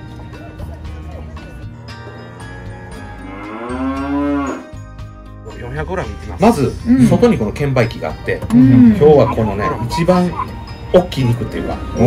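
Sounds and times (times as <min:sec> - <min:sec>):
long moo-like call: 0:02.3 - 0:04.8.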